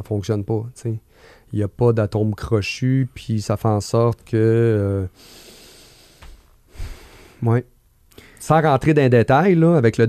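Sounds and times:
man breathing out through nose: 5.2 - 7.4.

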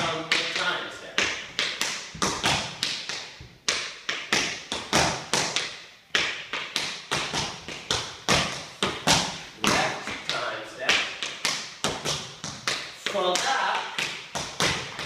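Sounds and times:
tap shoes on hardwood floor: 0.0 - 15.0.

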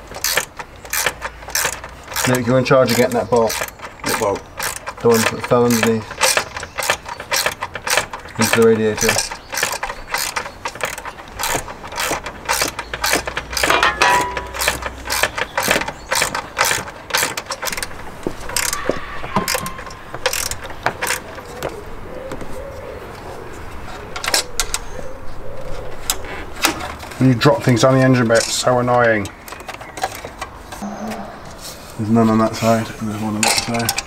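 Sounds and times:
ratchet wrench clicking: 0.1 - 18.8, 19.5 - 21.3.

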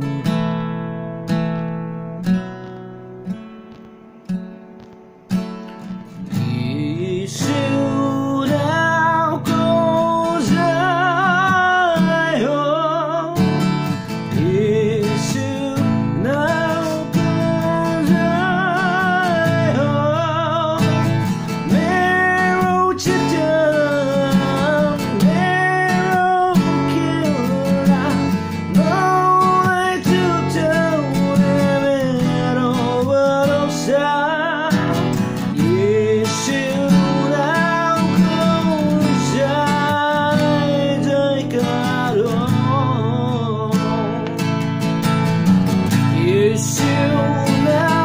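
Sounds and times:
acoustic guitar strumming chords: 0.0 - 48.0
person singing: 6.3 - 44.6, 45.9 - 48.0.

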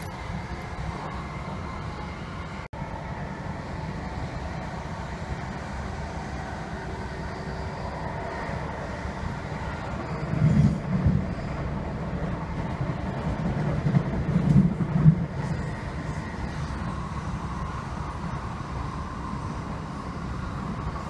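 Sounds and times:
train wheels rumbling on track: 0.0 - 21.0.

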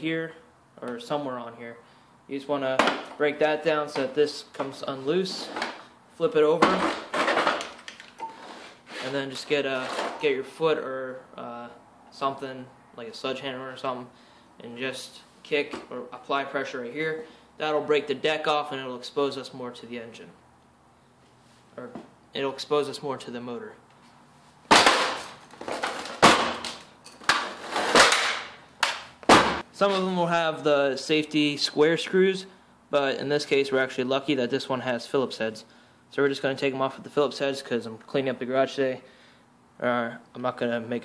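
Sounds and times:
plastic cracking under stomping boot: 24.7 - 29.6.

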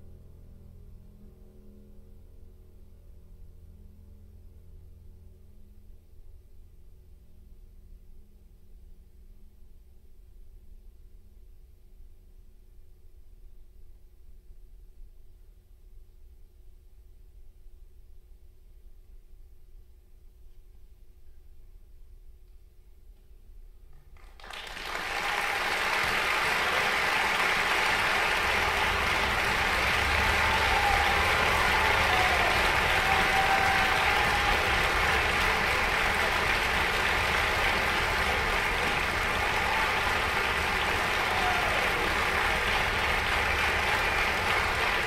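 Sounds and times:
audience applauding: 24.2 - 45.0.

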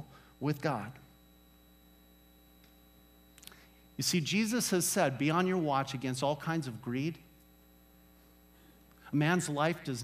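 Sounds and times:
man speaking: 0.0 - 1.1, 4.0 - 7.3, 9.0 - 10.0
faint electrical mains hum: 0.0 - 10.0.

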